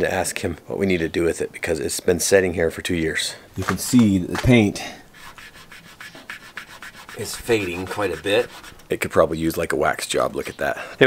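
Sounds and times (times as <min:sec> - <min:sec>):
fingertip rubbing painted metal: 0:05.1 - 0:09.1.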